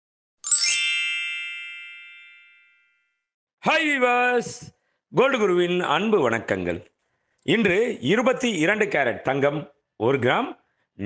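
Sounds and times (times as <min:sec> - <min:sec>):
sparkling chime: 0:00.4 - 0:02.8.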